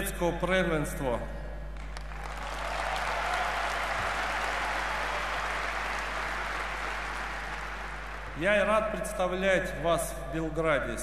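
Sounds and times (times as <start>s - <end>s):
audience applauding: 1.8s - 8.4s.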